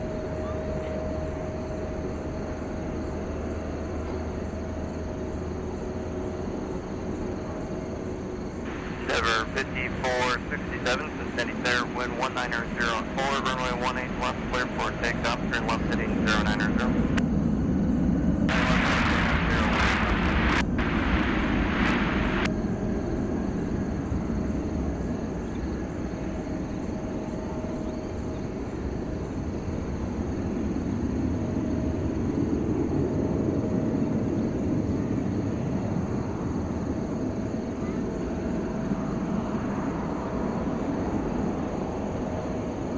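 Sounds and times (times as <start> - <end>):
jet engines roaring: 8.5 - 27.5.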